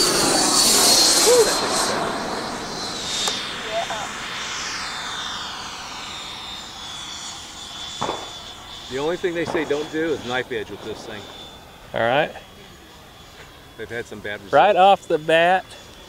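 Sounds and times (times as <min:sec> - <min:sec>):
model jet fan whine: 0:00.0 - 0:16.0.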